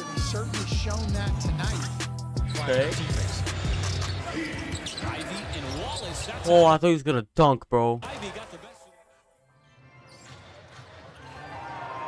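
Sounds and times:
background music: 0:00.0 - 0:05.0, 0:08.0 - 0:12.0.

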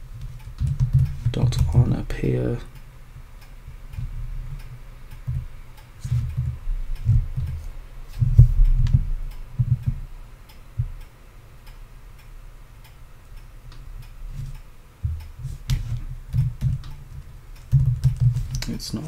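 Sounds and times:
computer keyboard typing: 0:00.5 - 0:01.2, 0:17.6 - 0:18.6.

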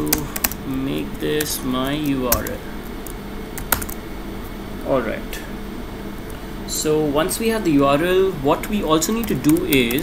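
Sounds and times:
computer keyboard keystrokes: 0:00.0 - 0:00.8, 0:01.4 - 0:04.0, 0:09.1 - 0:10.0.

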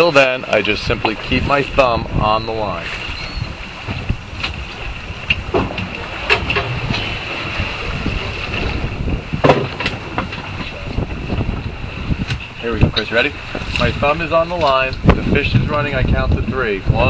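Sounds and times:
boat engine hum: 0:00.0 - 0:17.0
wind on microphone: 0:00.0 - 0:17.0.

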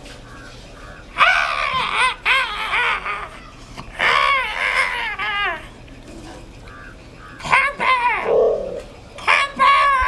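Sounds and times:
high-pitched wailing voice: 0:07.5 - 0:10.0.

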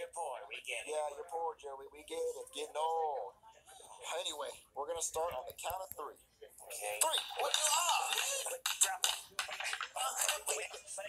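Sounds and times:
plastic cups clattering: 0:07.0 - 0:10.8.

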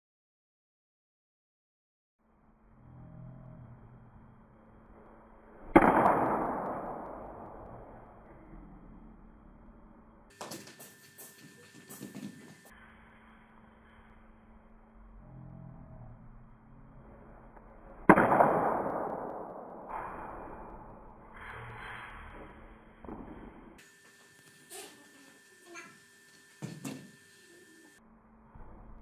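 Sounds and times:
bat cracking against ball: 0:05.6 - 0:07.4, 0:18.0 - 0:20.6.

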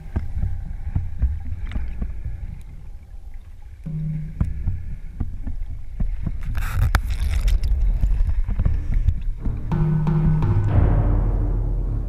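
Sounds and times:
underwater low rumble: 0:00.0 - 0:12.0.

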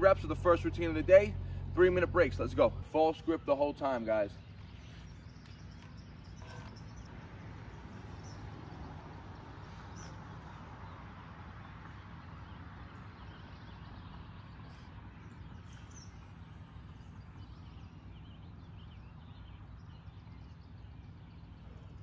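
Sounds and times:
outdoor background noise: 0:00.0 - 0:22.0
faint bird chirps: 0:04.3 - 0:09.0.

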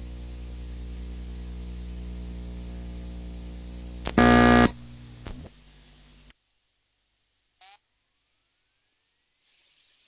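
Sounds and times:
mains hum: 0:00.0 - 0:10.0
loud buzz tone: 0:04.0 - 0:05.0.

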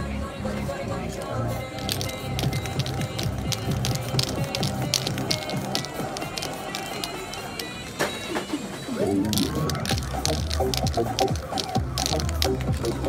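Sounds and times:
music with low bass line: 0:09.0 - 0:13.0.

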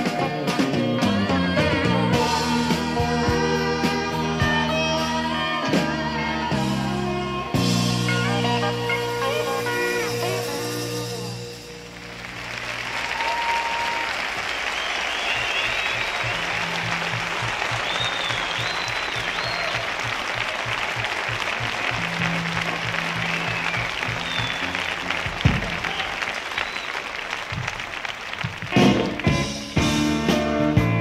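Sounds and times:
band playing loudly: 0:00.0 - 0:31.0
audience applauding: 0:11.7 - 0:30.1
whistles: 0:13.0 - 0:20.4, 0:23.2 - 0:27.2.

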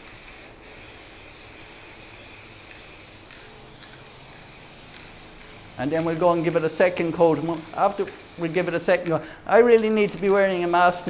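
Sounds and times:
spray paint can hissing: 0:00.0 - 0:11.0.

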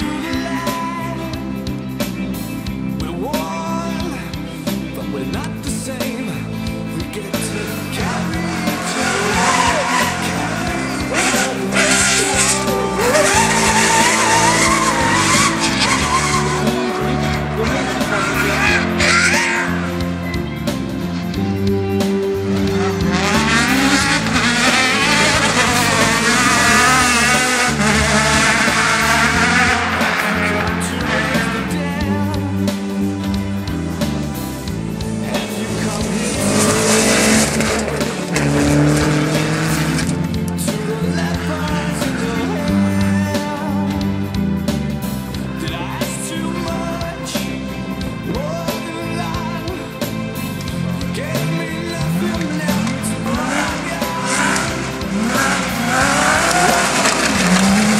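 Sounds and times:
background music: 0:00.0 - 0:57.9
car engine running hard: 0:00.0 - 0:57.9
tires sliding on loose dirt: 0:06.8 - 0:49.8, 0:50.4 - 0:57.9
tyres scrabbling on dirt: 0:52.8 - 0:57.9.

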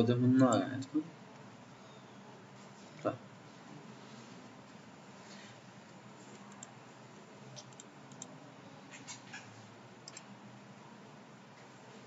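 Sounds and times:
low hum of room noise: 0:00.0 - 0:12.0
computer mouse clicks: 0:06.3 - 0:06.8, 0:07.5 - 0:08.3, 0:10.0 - 0:10.3.

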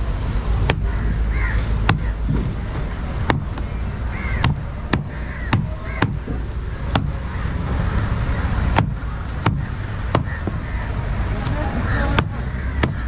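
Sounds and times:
knife chopping fish on wood: 0:04.4 - 0:06.3, 0:08.8 - 0:10.6, 0:12.2 - 0:13.0.

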